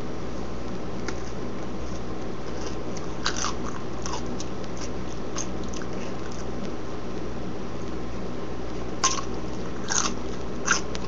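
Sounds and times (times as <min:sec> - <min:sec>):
crunchy chewing: 0:01.0 - 0:08.0, 0:08.8 - 0:11.0
bite into crisp pickle: 0:09.0 - 0:11.0.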